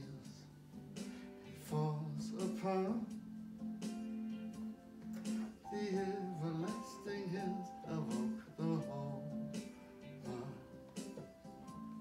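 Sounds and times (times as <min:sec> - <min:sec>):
electronic keyboard playing: 0:00.0 - 0:12.0.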